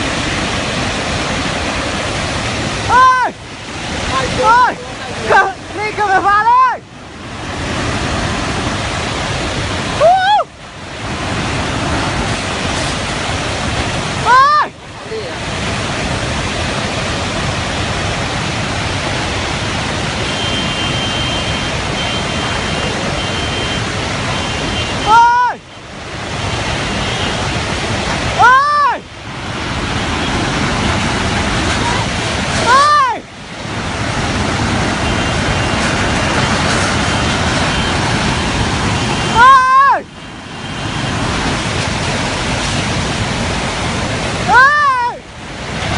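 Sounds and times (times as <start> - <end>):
flood torrent rushing: 0.0 - 45.9
onlookers shouting: 2.9 - 3.4, 14.2 - 14.8, 25.0 - 25.6, 28.4 - 29.1, 31.7 - 33.3, 39.3 - 40.1, 44.5 - 45.3.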